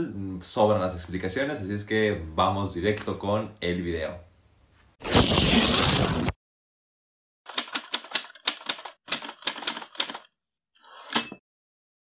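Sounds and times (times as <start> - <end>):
typewriter keys clacking: 7.5 - 10.3.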